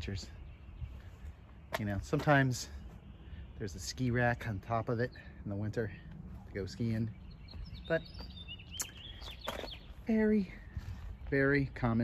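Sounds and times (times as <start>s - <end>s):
low outdoor rumble: 0.0s - 12.0s
small birds chirping: 0.0s - 12.0s
faint footsteps or taps: 7.5s - 9.8s.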